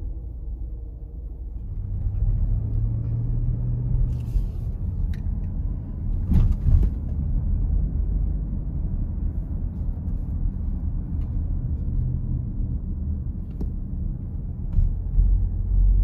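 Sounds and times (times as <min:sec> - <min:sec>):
car engine and road rumble: 0:00.0 - 0:16.0.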